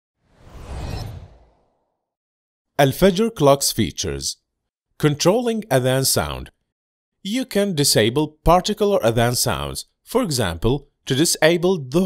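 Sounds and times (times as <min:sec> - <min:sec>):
whoosh with deep rumble: 0:00.2 - 0:01.8.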